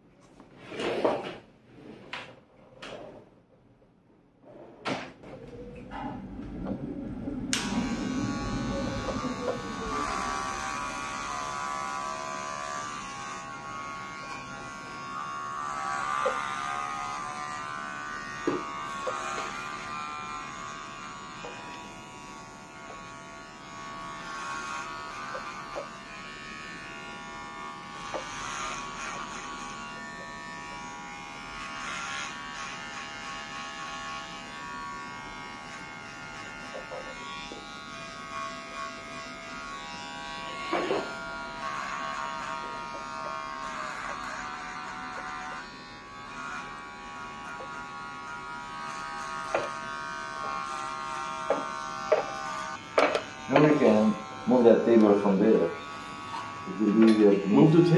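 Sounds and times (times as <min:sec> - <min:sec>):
electric hair clippers buzzing: 0:07.5 - 0:57.9.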